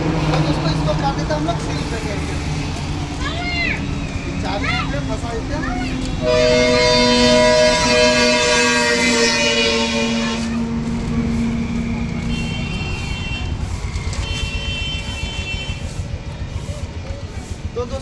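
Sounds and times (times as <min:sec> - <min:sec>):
vehicle horn blast: 0:06.2 - 0:10.8, 0:12.2 - 0:13.6, 0:14.2 - 0:16.0.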